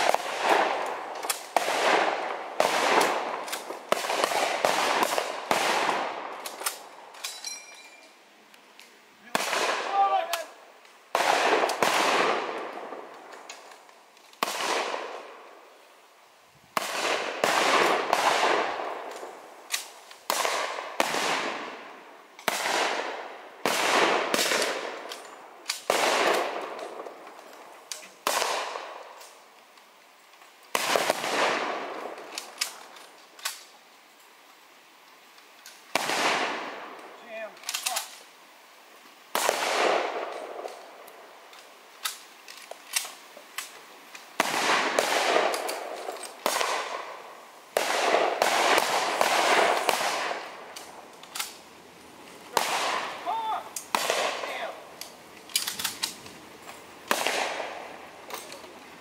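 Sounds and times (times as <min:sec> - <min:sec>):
rifle gunshots echoing: 0:00.0 - 0:06.9, 0:09.2 - 0:10.5, 0:11.1 - 0:13.1, 0:14.4 - 0:15.3, 0:16.8 - 0:27.0, 0:28.2 - 0:29.0, 0:30.7 - 0:32.8, 0:35.9 - 0:36.9, 0:39.3 - 0:40.8, 0:44.4 - 0:51.6, 0:52.5 - 0:54.9, 0:57.1 - 0:58.0.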